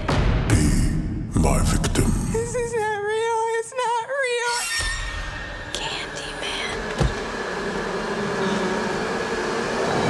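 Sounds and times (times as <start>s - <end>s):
breathy whisper: 5.7s - 6.9s.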